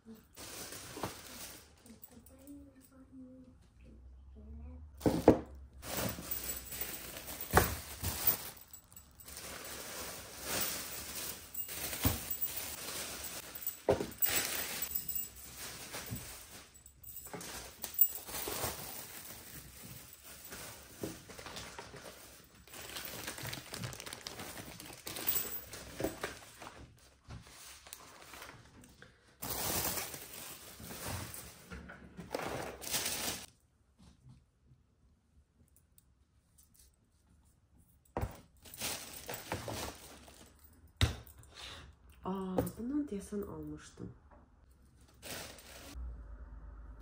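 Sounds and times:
plastic bags rustling: 0.0s - 2.1s, 5.1s - 33.5s, 38.2s - 40.8s, 45.1s - 46.0s.

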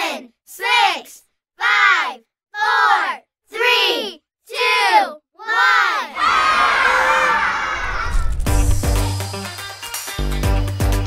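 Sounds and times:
children cheering and shouting: 1.6s - 8.5s.

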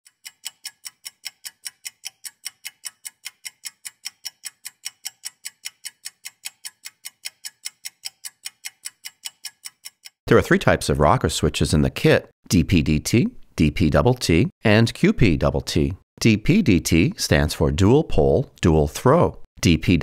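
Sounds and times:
clock ticking rapidly: 0.0s - 10.2s.

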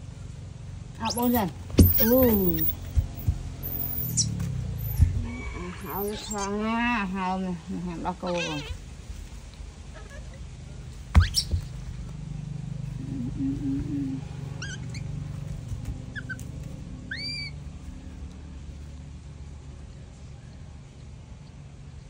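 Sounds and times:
steady low hum: 0.0s - 22.0s
monkeys squeaky calls: 1.0s - 6.6s, 11.2s - 11.7s, 14.6s - 15.1s, 16.1s - 16.5s, 17.1s - 17.6s
sharp knock with rising squeak: 1.2s - 6.4s, 11.1s - 11.7s.

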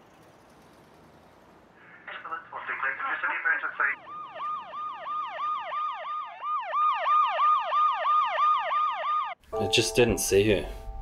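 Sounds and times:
emergency siren yelping: 4.0s - 9.4s.

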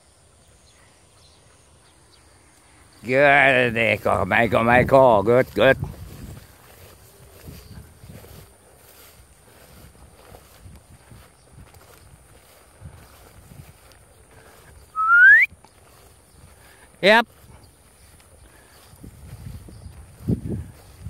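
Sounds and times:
rustling through grass: 0.7s - 21.0s
short rising whistle: 15.0s - 15.5s.

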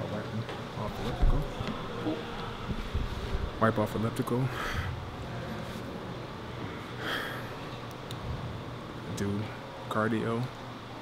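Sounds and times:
gym hall background hum: 0.0s - 11.0s.

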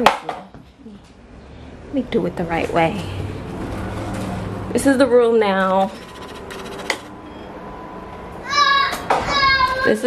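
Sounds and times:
child squealing: 8.4s - 10.0s.

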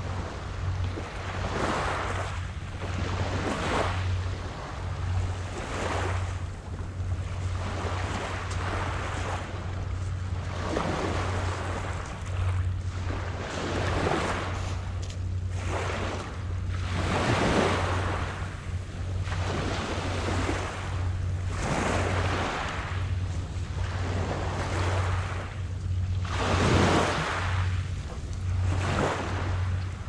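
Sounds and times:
low wind rumble on microphone: 0.0s - 30.0s.

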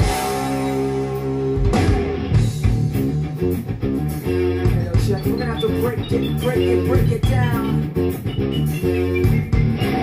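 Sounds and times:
drum hits: 0.0s - 3.1s
electric guitar and bass riff: 0.0s - 10.0s.

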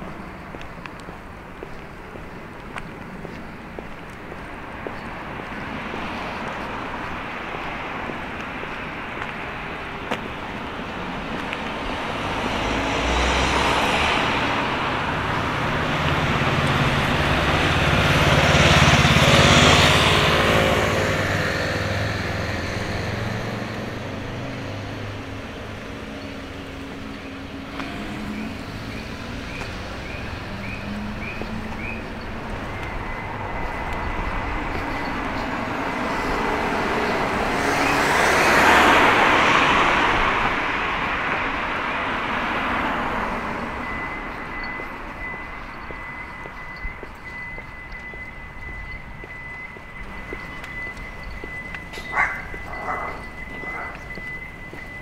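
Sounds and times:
cars passing on street: 0.0s - 55.0s.

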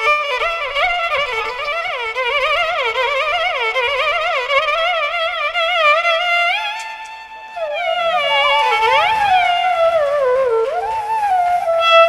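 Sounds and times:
ornamented classical melody: 0.0s - 12.0s.

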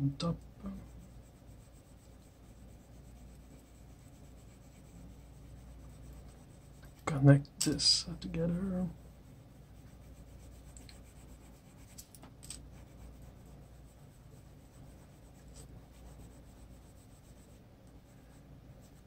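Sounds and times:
colored pencil scratching on paper: 0.6s - 7.1s, 7.8s - 12.0s, 12.6s - 19.0s.

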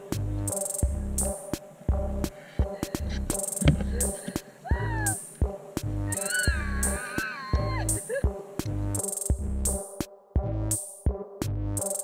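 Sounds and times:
electronic music with beat: 0.0s - 12.0s.

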